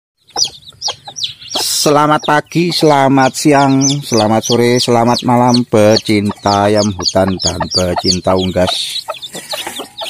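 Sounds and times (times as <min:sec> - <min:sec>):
chicks peeping: 0:00.2 - 0:10.0.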